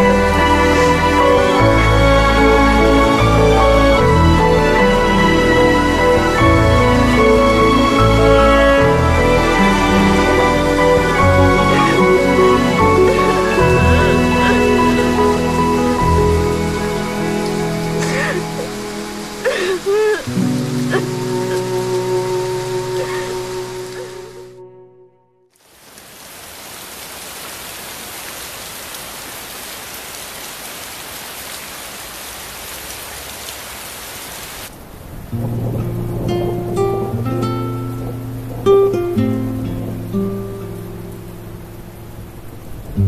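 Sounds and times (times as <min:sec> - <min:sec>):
steady rain falling: 0:00.0 - 0:24.8, 0:25.5 - 0:43.0
woman sobbing: 0:11.6 - 0:15.4, 0:18.0 - 0:22.0, 0:22.8 - 0:24.4
acoustic guitar song: 0:35.4 - 0:41.9.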